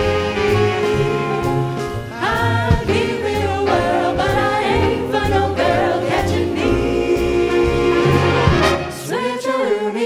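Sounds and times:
drums: 0.0s - 8.8s
upright bass: 0.0s - 9.0s
big band: 0.0s - 9.4s
vocal group singing in harmony: 0.3s - 10.0s.

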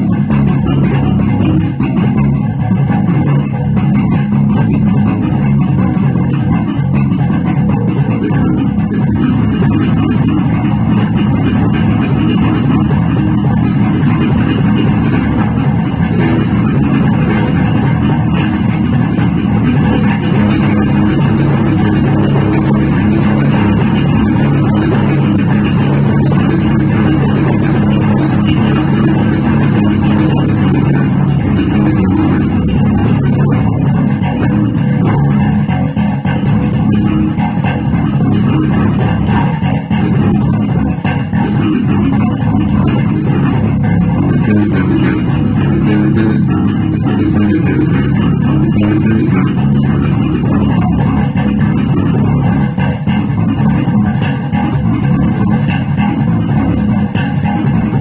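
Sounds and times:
electric bass funk groove: 0.0s - 58.0s.

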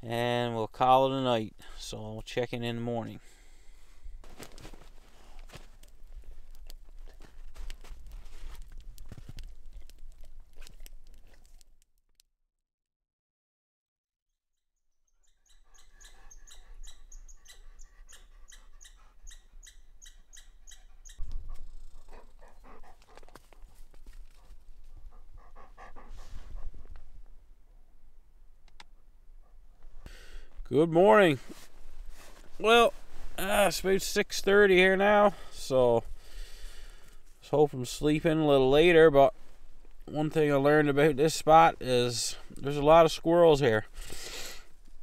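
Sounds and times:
campfire crackling: 3.2s - 12.2s, 19.2s - 45.0s
dog panting: 15.7s - 27.0s.

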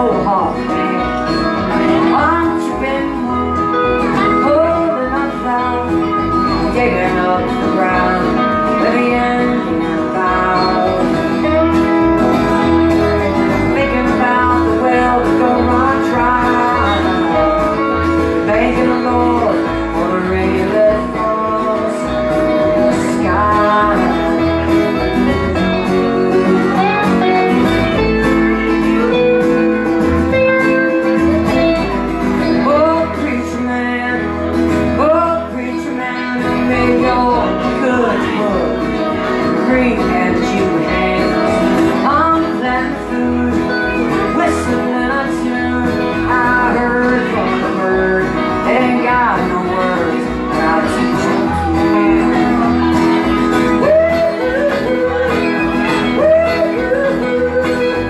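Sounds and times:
country-rock band playing: 0.0s - 58.0s
person singing: 0.0s - 58.0s.

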